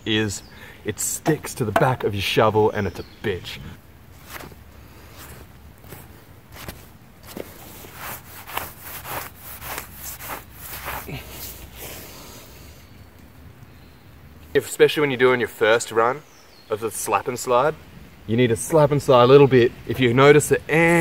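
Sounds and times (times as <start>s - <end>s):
shovel blade scraping on wet grass: 4.2s - 11.7s.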